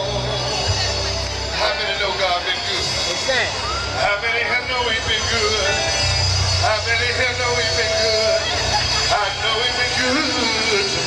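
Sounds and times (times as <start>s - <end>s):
band playing: 0.0s - 11.0s.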